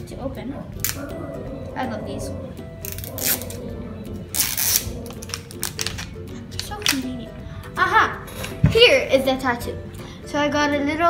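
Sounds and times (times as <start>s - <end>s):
background music: 0.0s - 11.0s
small crackles and clicks: 0.8s - 1.1s, 4.3s - 7.1s
plastic wrapping crinkling: 4.4s - 7.0s.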